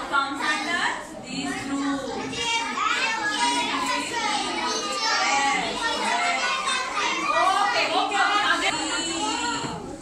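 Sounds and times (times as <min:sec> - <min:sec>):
young children talking and calling: 0:00.0 - 0:10.0.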